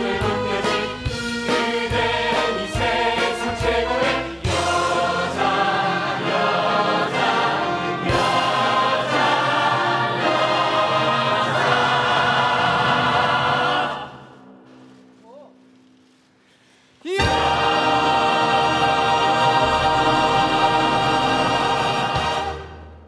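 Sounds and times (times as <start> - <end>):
orchestra playing: 0.0 - 14.2, 17.2 - 23.0
brass and drum accents: 0.0 - 15.2, 17.2 - 23.0
ensemble singing: 0.0 - 15.7, 17.1 - 23.0.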